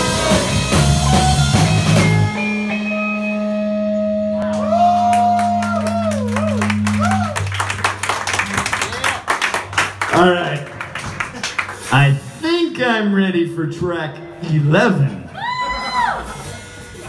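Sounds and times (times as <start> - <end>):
rock band playing: 0.0 - 17.0
bending electric guitar tone: 1.0 - 8.8
people clapping: 4.4 - 12.2.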